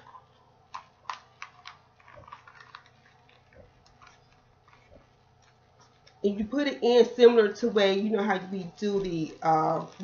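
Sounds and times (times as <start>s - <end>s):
paper and plastic bag crinkling: 1.0s - 6.2s.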